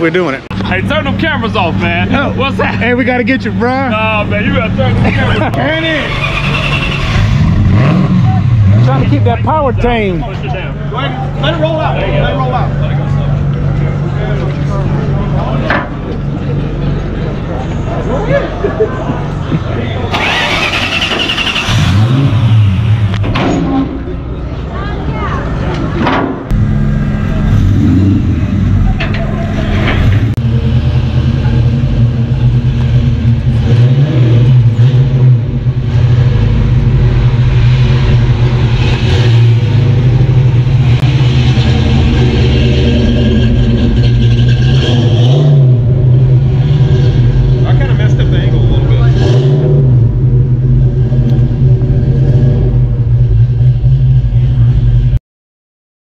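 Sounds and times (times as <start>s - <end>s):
car engine idling and revving: 0.0s - 55.2s.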